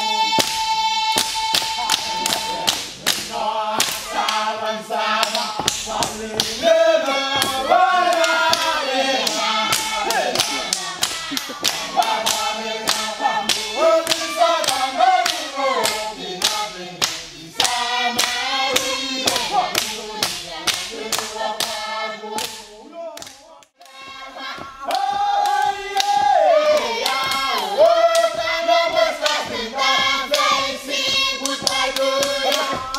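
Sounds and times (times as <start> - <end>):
group of voices chanting: 0.0 - 32.9
rhythmic hand claps: 0.0 - 32.9.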